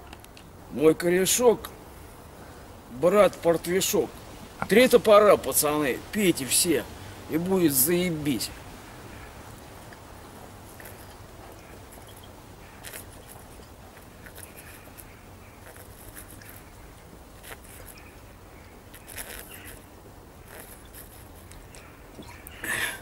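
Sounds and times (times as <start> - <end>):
low background noise: 0.0 - 23.0.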